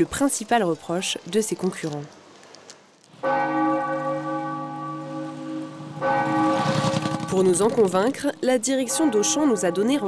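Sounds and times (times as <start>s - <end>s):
large tower bell ringing: 3.2s - 10.0s.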